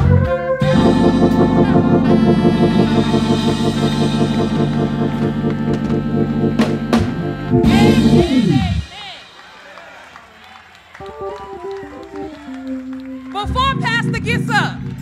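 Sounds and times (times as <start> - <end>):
stray low notes: 0.0 - 9.0
live band holding final chord: 0.6 - 9.4
drum and cymbal hits: 6.6 - 9.4.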